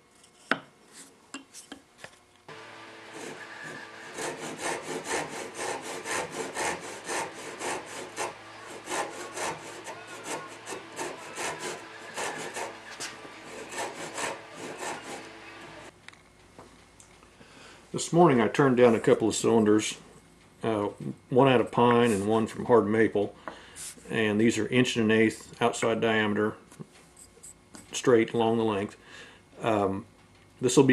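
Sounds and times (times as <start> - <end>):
hand saw cutting wood: 2.5 - 15.9.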